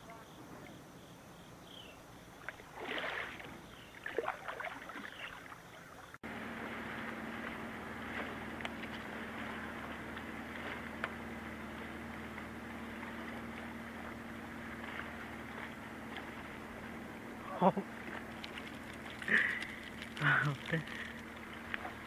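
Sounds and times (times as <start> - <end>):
low hum with hiss: 0.0 - 22.0
paddle splashing water: 2.4 - 22.0.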